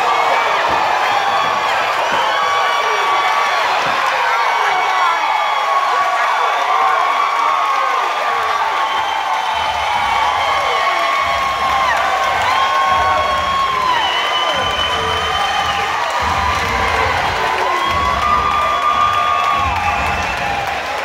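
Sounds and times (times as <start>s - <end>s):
crowd cheering and yelling: 0.0s - 21.0s.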